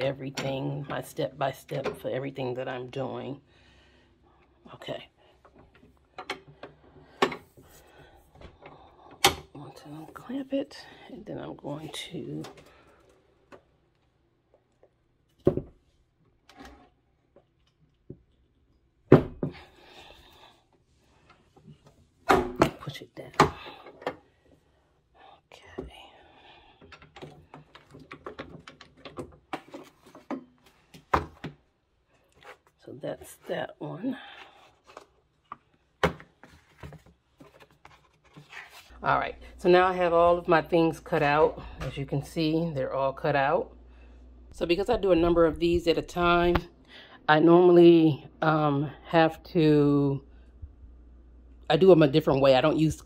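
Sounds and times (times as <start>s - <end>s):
paper rustling: 36.4s - 38.9s.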